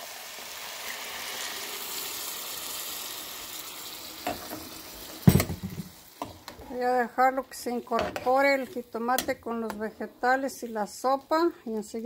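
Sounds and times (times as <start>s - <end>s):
tomato sizzling in a pan: 0.0s - 12.0s.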